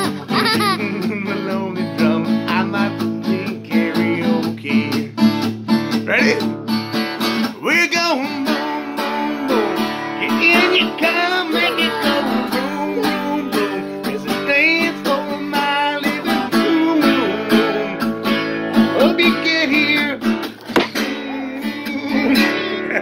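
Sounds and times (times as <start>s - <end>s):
man singing: 0.0s - 5.3s, 7.4s - 18.2s, 18.8s - 23.0s
acoustic guitar strumming: 0.0s - 23.0s.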